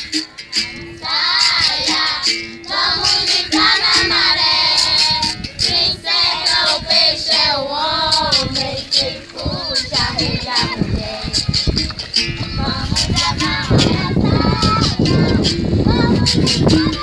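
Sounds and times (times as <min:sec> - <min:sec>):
girls singing together: 0:00.0 - 0:17.0.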